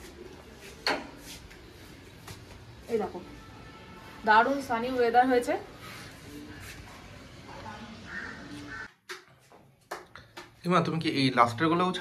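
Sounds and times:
street ambience: 0:00.0 - 0:12.0
bird calling: 0:08.0 - 0:09.0.

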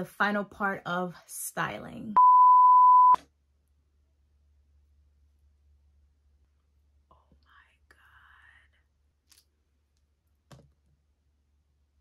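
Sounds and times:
faint whisper: 0:07.0 - 0:09.0.

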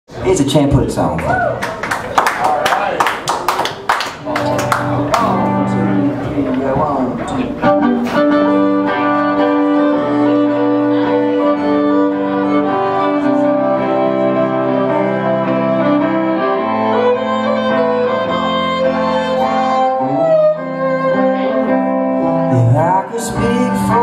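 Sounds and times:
people clapping: 0:01.0 - 0:05.6
band playing: 0:03.7 - 0:24.0
upright bass: 0:04.2 - 0:16.5, 0:17.8 - 0:24.0
fiddle bowing: 0:04.7 - 0:24.0.

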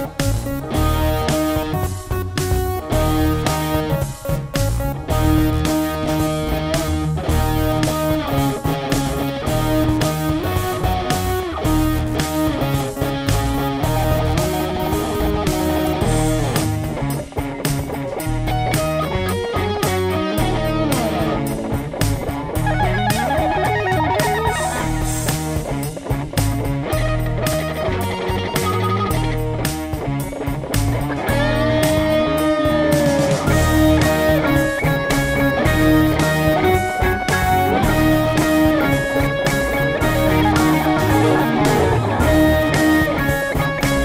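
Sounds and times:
electric guitar over steady beat: 0:00.0 - 0:44.0.

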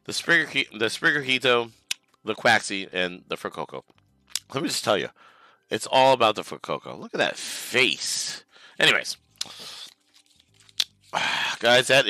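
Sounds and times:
foil wrapper crinkling: 0:09.4 - 0:11.0.

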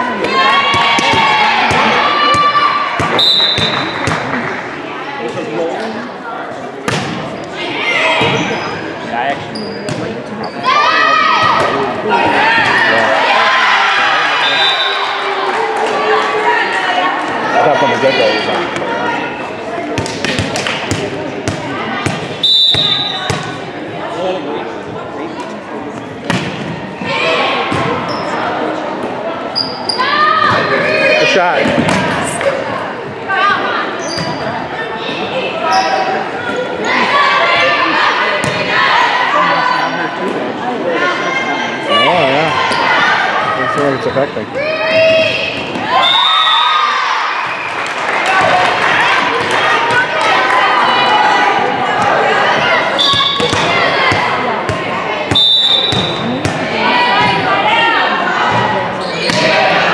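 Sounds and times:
people shouting and calling out: 0:00.0 - 0:04.1, 0:10.3 - 0:20.0, 0:34.7 - 0:47.5, 0:48.2 - 0:59.9
volleyball struck: 0:00.2 - 0:04.5, 0:06.8 - 0:07.2, 0:26.2 - 0:26.7, 0:53.1 - 0:57.4
short high whistle: 0:03.2 - 0:03.9, 0:55.4 - 0:56.2.

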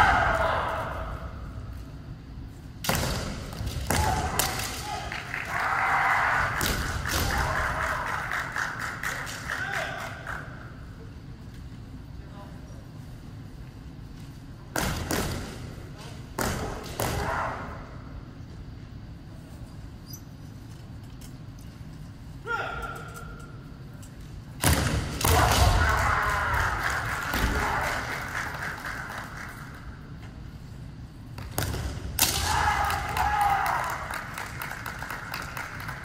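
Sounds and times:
fighters shouting: 0:00.0 - 0:01.5, 0:03.9 - 0:08.4, 0:16.6 - 0:18.1, 0:22.4 - 0:23.1, 0:25.2 - 0:28.4, 0:32.2 - 0:34.2.

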